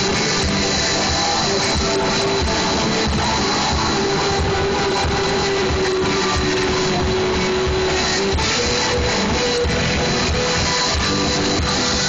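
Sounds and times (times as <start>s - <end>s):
drums steady beat: 0.0s - 12.0s
live rock band playing: 0.0s - 12.0s.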